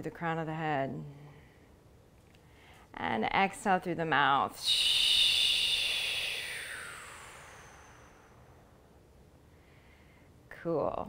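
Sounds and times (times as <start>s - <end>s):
woman exhaling slowly: 4.6s - 8.6s.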